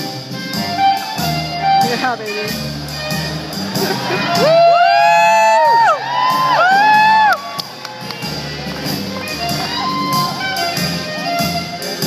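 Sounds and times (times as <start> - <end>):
blues band with horns: 0.0 - 12.0.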